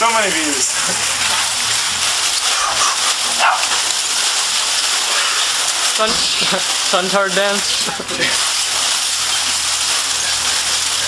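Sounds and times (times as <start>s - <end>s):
aluminium foil crinkling: 0.8s - 11.0s.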